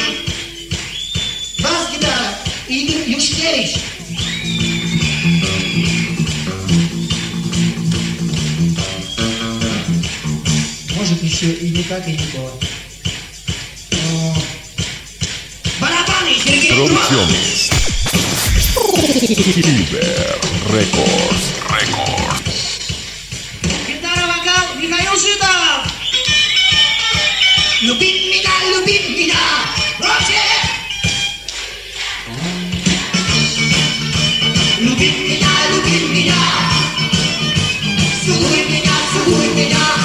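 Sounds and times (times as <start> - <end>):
guitar: 16.4 - 22.7.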